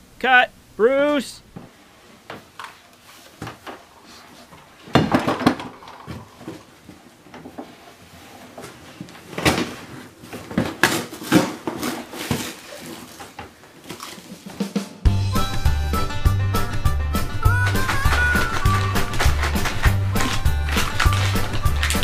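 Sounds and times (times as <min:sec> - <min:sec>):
cardboard box scraping and crumpling: 0:09.6 - 0:14.5.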